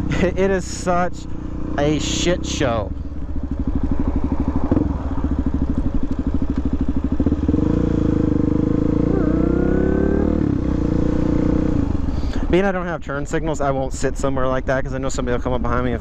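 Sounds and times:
motorcycle engine revving: 0:00.0 - 0:12.4.

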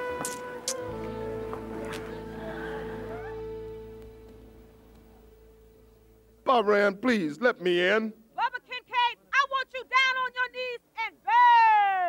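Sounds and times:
held music chord: 0:00.0 - 0:06.5.

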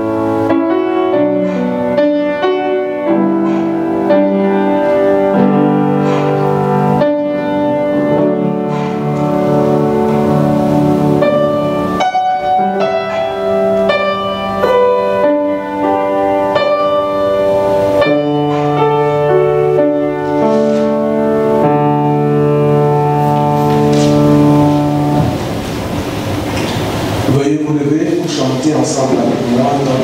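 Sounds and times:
slow keyboard chords: 0:00.0 - 0:30.0.

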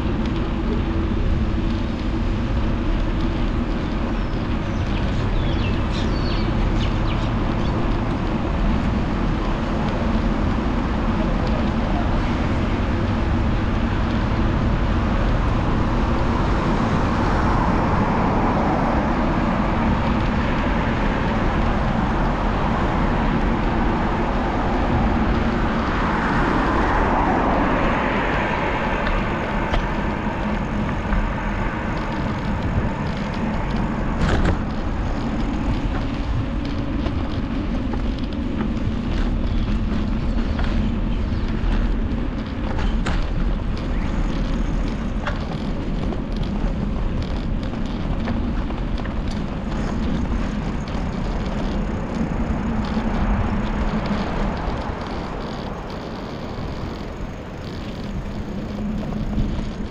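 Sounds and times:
bicycle tyre noise: 0:00.0 - 0:59.9
road traffic: 0:00.0 - 0:59.9
wind rush on microphone: 0:00.0 - 0:59.9.

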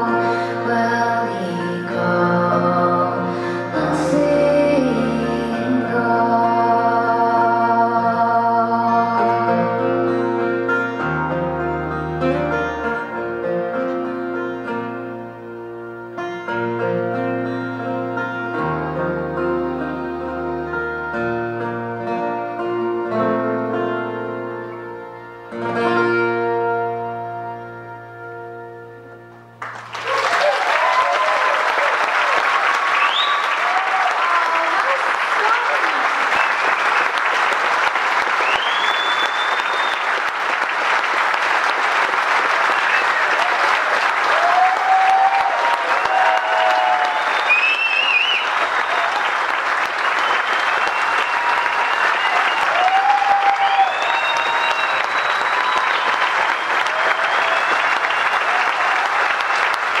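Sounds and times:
audience applauding and cheering: 0:29.6 - 1:00.0
shouts and whoops: 0:30.0 - 0:36.0, 0:44.3 - 0:49.3, 0:50.9 - 0:59.2.

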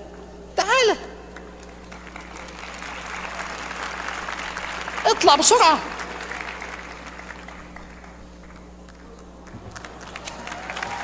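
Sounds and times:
large audience applauding: 0:01.8 - 0:11.0.

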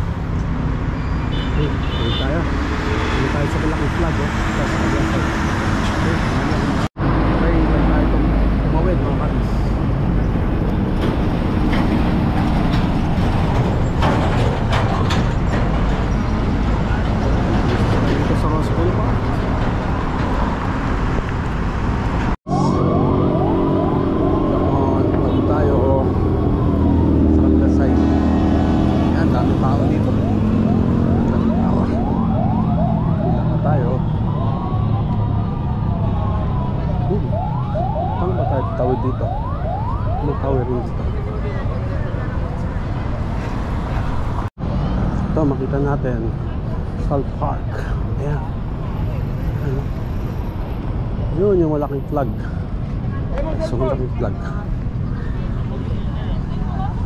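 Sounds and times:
heavy road traffic: 0:00.0 - 0:57.0
siren wailing: 0:22.5 - 0:28.4, 0:29.2 - 0:42.6.

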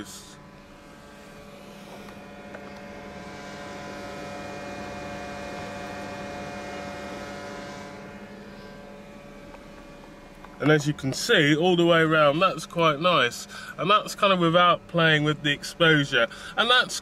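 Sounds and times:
steady hum: 0:00.0 - 0:17.0.

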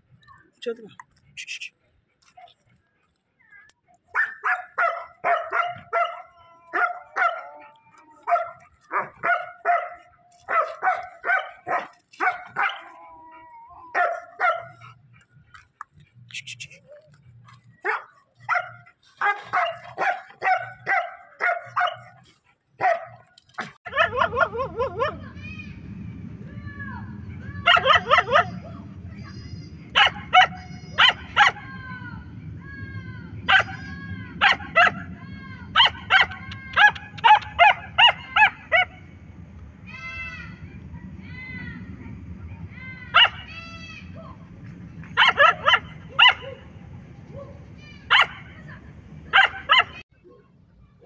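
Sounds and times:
dog barking in high yips: 0:04.1 - 0:13.0, 0:13.9 - 0:14.7, 0:17.8 - 0:22.2, 0:22.8 - 0:25.2, 0:27.6 - 0:28.6, 0:29.9 - 0:31.7, 0:33.5 - 0:35.1, 0:35.8 - 0:38.9, 0:43.1 - 0:43.5, 0:45.2 - 0:46.5, 0:48.1 - 0:48.5, 0:49.3 - 0:50.0
steady low hum: 0:06.8 - 0:50.1.

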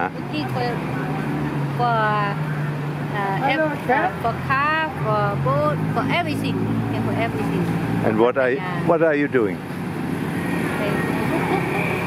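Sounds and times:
road traffic passing: 0:00.0 - 0:12.0.

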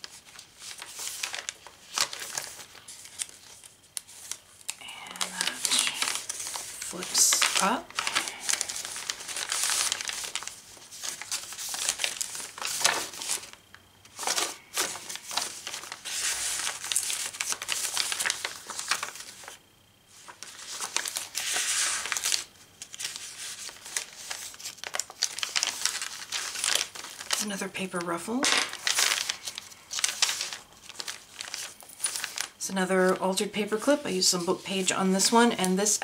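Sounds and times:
paper pages rustling: 0:00.0 - 0:36.0.

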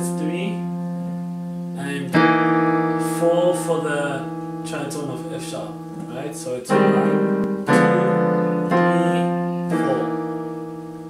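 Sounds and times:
digital piano chords: 0:00.0 - 0:11.0.

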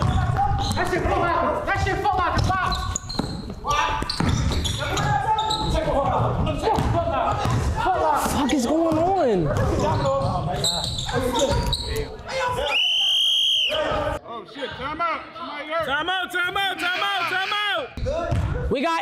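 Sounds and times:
basketball bouncing on gym floor: 0:02.3 - 0:07.7, 0:08.7 - 0:10.5.

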